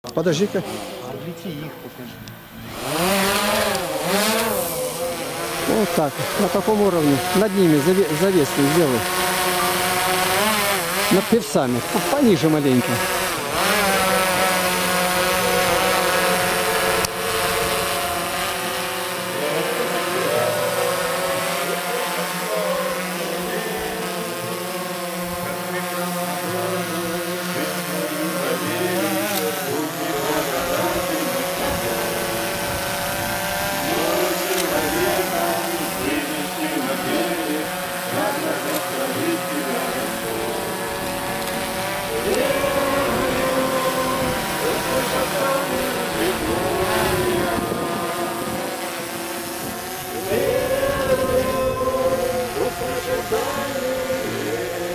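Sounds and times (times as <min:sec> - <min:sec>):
drone propellers buzzing: 0:00.1 - 0:54.9.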